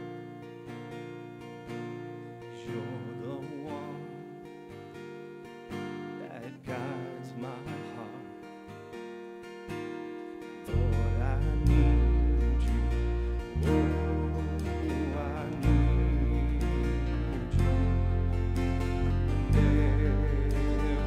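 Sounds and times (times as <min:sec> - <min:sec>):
strummed acoustic guitar: 0:00.0 - 0:21.0
man singing: 0:02.5 - 0:04.4, 0:06.1 - 0:08.6, 0:10.6 - 0:21.0
deep bass: 0:10.7 - 0:21.0.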